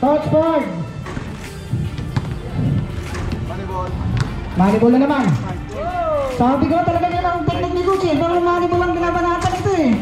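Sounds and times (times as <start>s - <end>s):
background music: 0.0s - 10.0s
basketballs bouncing on court: 1.1s - 5.2s.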